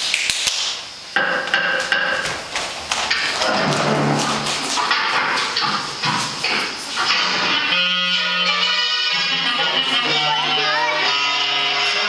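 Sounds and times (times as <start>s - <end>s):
sharp knocks: 1.2s - 2.4s
music with held notes: 7.1s - 12.0s.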